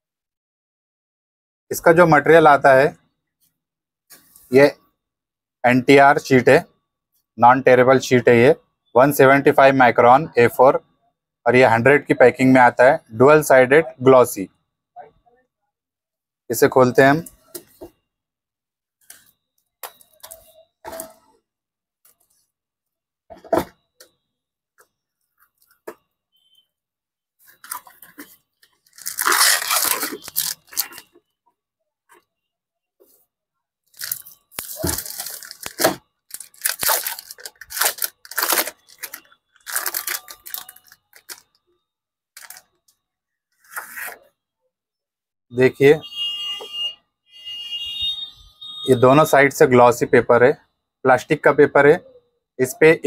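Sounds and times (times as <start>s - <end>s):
foil wrapper tearing and crinkling: 28.9s - 31.0s, 34.0s - 41.4s, 42.4s - 42.6s.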